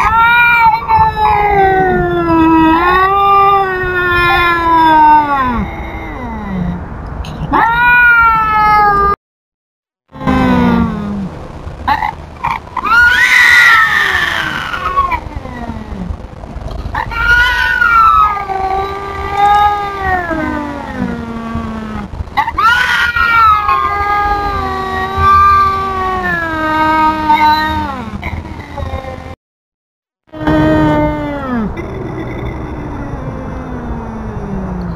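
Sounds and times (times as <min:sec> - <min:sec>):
cats yowling: 0:00.0 - 0:06.8, 0:07.5 - 0:09.2, 0:11.9 - 0:16.2, 0:17.0 - 0:28.2.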